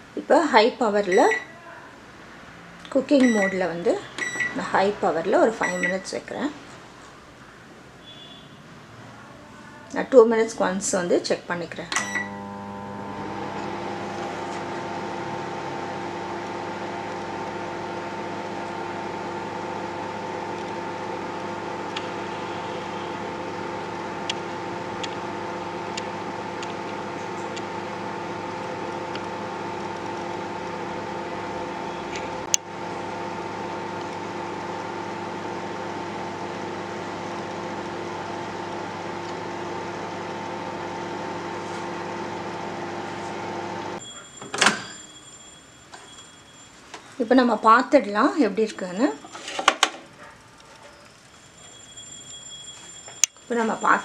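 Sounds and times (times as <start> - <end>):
microwave oven humming: 3.2 - 6.1, 11.9 - 44.0.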